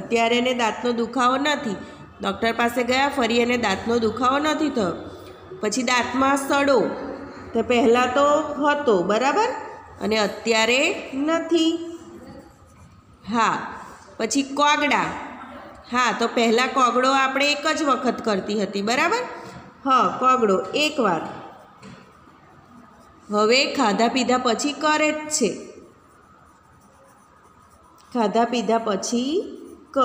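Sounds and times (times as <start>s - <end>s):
pencil scratching on paper: 9.9s - 14.1s, 20.7s - 30.0s.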